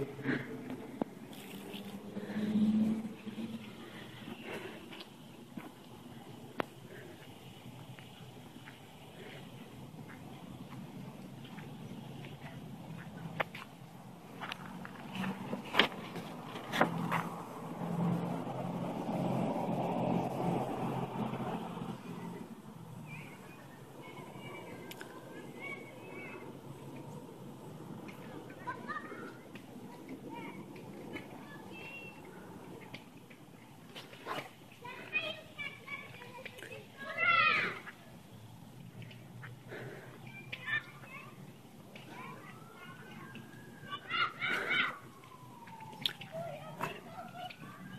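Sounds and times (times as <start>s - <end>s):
road vehicle passing by: 0.0s - 47.9s
children calling: 19.8s - 38.3s, 38.9s - 47.9s.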